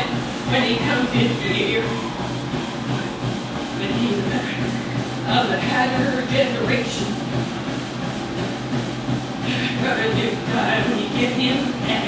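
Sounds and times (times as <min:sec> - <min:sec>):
person running on treadmill: 0:00.0 - 0:12.0
treadmill motor and belt hum: 0:00.0 - 0:12.0.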